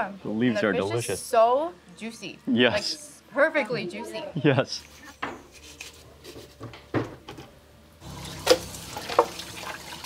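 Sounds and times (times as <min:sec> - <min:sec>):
knife on cutting board: 0:05.0 - 0:06.6.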